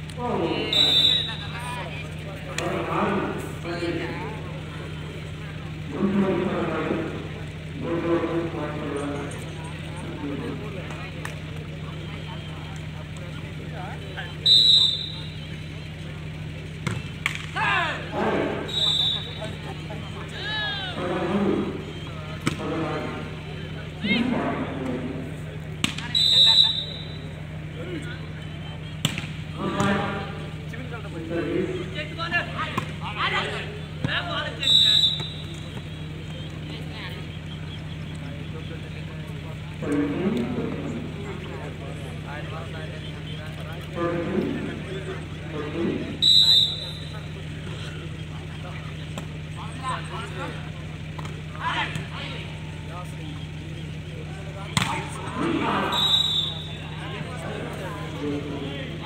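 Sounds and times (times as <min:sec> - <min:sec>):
scattered voices: 0:00.0 - 0:59.0
spectators shouting and cheering: 0:00.0 - 0:59.0
steady low hum: 0:00.0 - 0:59.0
volleyball smack: 0:16.8 - 0:17.6, 0:25.8 - 0:26.1, 0:29.0 - 0:30.0, 0:54.7 - 0:55.2
people shouting: 0:17.4 - 0:21.9, 0:51.6 - 0:52.5.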